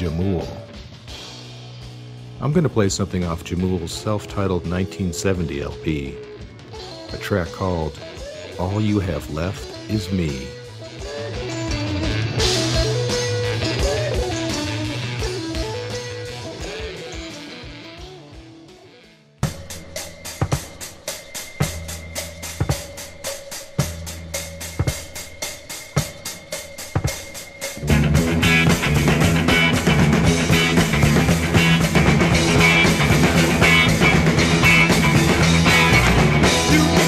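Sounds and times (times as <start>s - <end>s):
rock music: 0.0s - 37.0s.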